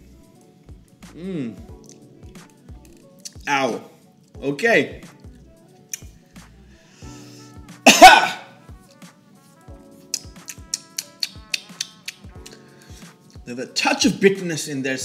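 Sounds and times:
quiet background music: 0.0 - 15.0
man coughing harshly: 7.9 - 8.5.

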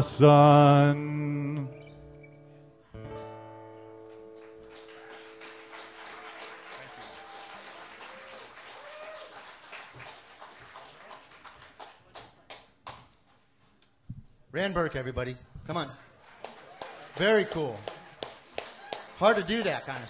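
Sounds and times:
acoustic guitar chord ringing: 0.1 - 6.9
audience applause: 4.0 - 12.6, 16.1 - 20.0
audience whooping: 4.5 - 10.2, 17.9 - 19.2.

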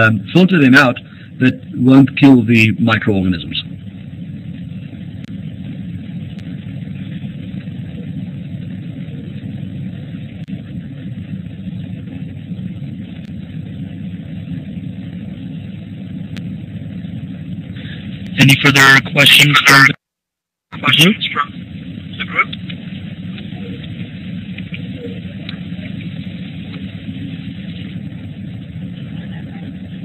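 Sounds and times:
low rumble: 0.0 - 20.0, 20.8 - 30.0
microphone hiss: 0.0 - 30.0.

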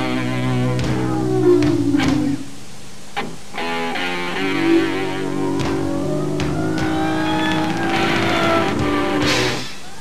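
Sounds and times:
electric guitar bending notes: 0.0 - 2.5, 3.2 - 9.6
drums: 0.0 - 10.0
cymbal crashes: 9.2 - 9.9.

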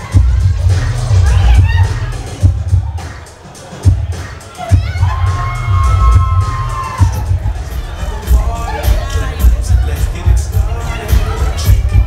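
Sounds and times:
crowd cheering and shouting: 0.0 - 12.0
dance music with heavy bass: 0.0 - 12.0.

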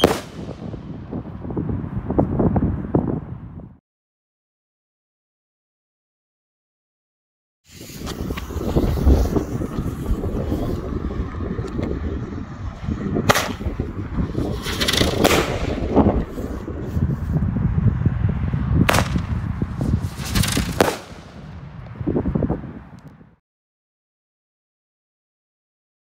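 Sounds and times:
fireworks bangs: 0.0 - 1.2, 13.2 - 16.6, 18.8 - 22.0
steady low rumble: 8.0 - 23.3.

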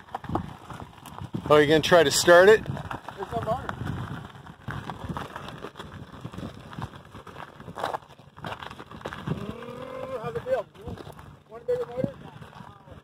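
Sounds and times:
tyres rolling on road: 0.0 - 13.0
crackling and knocks: 2.6 - 9.6.

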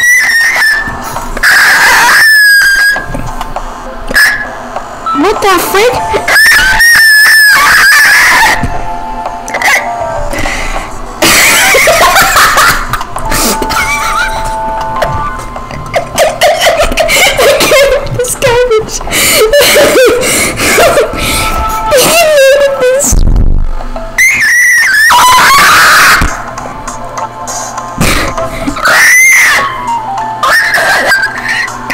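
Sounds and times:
high-pitched vocal shriek: 0.0 - 3.1, 6.3 - 8.6, 24.2 - 26.4, 28.8 - 31.7.

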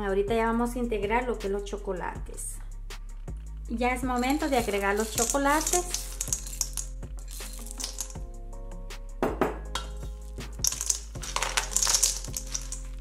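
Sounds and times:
background music: 0.0 - 13.0
chocolate chips clicking into bowl: 4.2 - 8.2, 9.8 - 13.0
spatula scraping bowl: 4.2 - 8.2.

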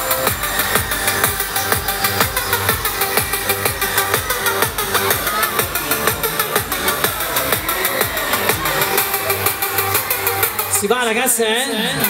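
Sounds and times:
electronic dance music: 0.0 - 12.0
man's amplified voice calling out: 3.3 - 9.6, 10.6 - 12.0.

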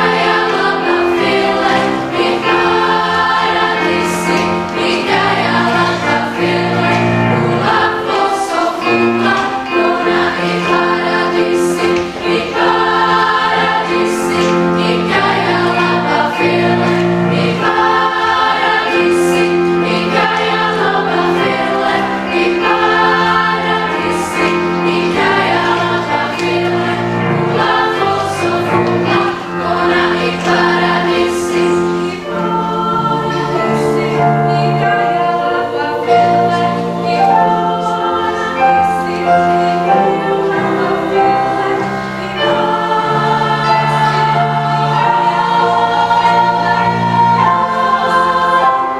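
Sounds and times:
children's choir singing: 0.0 - 48.9.

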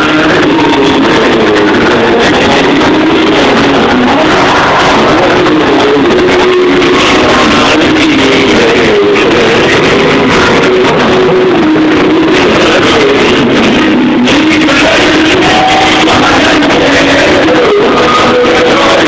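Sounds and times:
live concert music: 0.0 - 19.0.

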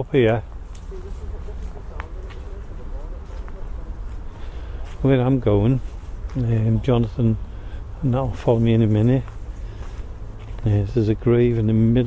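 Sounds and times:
faint murmuring voices: 0.0 - 12.0
steady low rumble: 0.0 - 12.0.

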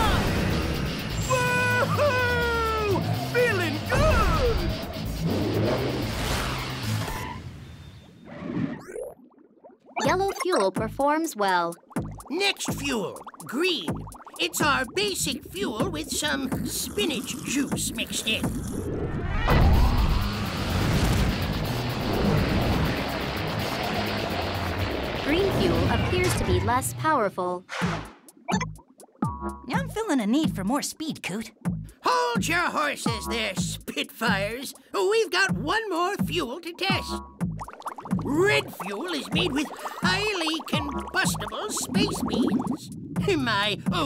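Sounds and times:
background music: 0.0 - 7.0, 10.0 - 18.6, 19.8 - 44.0
cartoon jet engines roaring: 0.0 - 7.5, 19.2 - 26.7.

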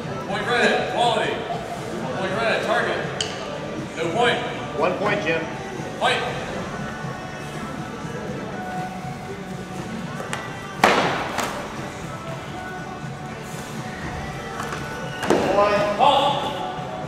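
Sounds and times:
background music echoing: 0.0 - 17.0.

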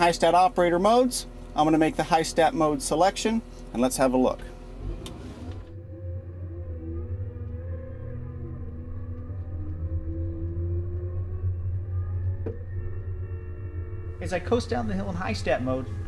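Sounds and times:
wheel loader engine drone: 0.0 - 16.0.

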